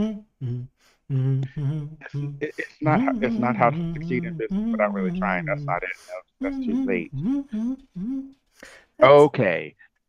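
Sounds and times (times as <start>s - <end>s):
man humming: 0.0s - 8.4s
faint breath: 8.5s - 9.0s.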